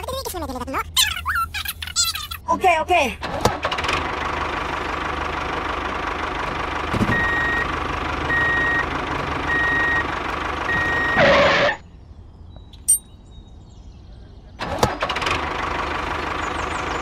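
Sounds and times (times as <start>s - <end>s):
vehicle engine running: 2.6s - 11.8s, 14.8s - 17.0s
reversing alarm beeping: 7.1s - 7.7s, 8.3s - 8.9s, 9.5s - 10.1s, 10.7s - 11.8s.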